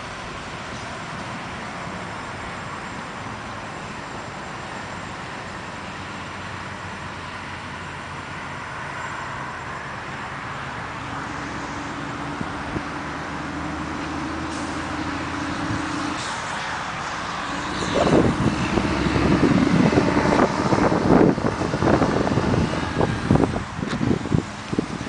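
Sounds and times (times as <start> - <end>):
road traffic with engine hum: 0.0 - 25.0
wind buffeting microphone: 14.4 - 16.3, 17.5 - 25.0.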